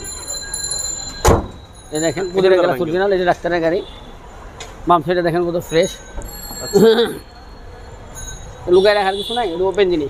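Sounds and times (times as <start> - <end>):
car bonnet thumping shut: 1.2 - 1.6
man talking: 1.9 - 3.9.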